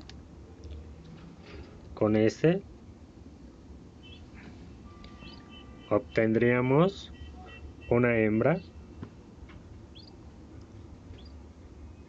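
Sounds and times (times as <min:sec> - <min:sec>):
birds chirping: 0:04.0 - 0:09.1, 0:09.9 - 0:10.2, 0:11.1 - 0:12.0.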